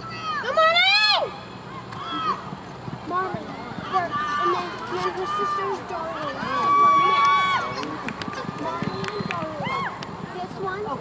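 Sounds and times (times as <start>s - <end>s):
galloping hooves on dirt: 1.7s - 11.0s
spectators yelling: 3.5s - 10.0s.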